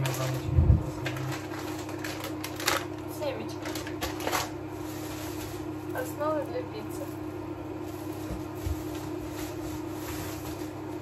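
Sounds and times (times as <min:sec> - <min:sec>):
packaging rustling and crinkling: 0:00.0 - 0:06.1, 0:06.9 - 0:11.0
steady low hum: 0:00.0 - 0:11.0.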